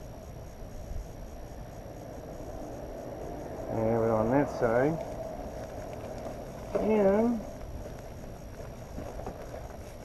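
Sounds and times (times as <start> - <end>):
wind rumbling on microphone: 0.0 - 10.0
fabric rustling: 5.1 - 10.0.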